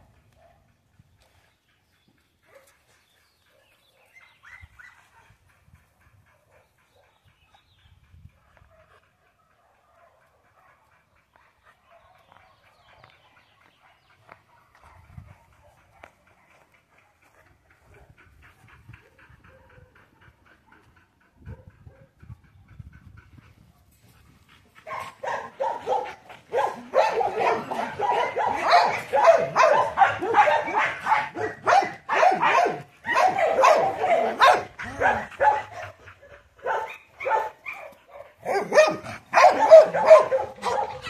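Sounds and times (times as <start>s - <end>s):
dog barking rapidly: 24.9s - 35.9s, 36.6s - 41.0s.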